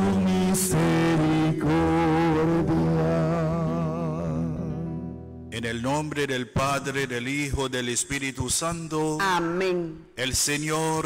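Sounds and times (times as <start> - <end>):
sustained accompanying chord: 0.0 - 5.6.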